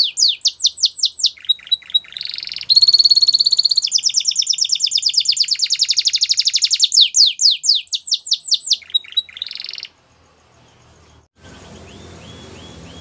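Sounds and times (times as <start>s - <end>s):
canary singing: 0.0s - 13.0s.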